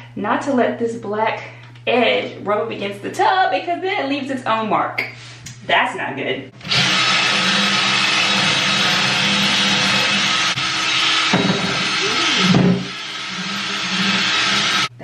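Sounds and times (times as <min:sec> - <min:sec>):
cordless drill motor whirring: 0:06.6 - 0:14.9
brush scrubbing bathtub: 0:11.8 - 0:14.9.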